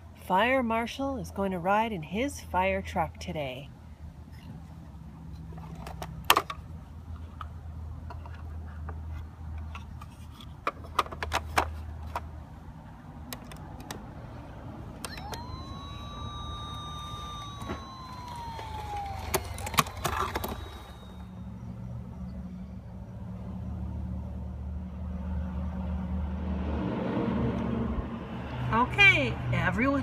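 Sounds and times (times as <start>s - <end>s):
fire truck engine rumble: 3.8s - 25.0s
siren wail: 14.9s - 21.8s.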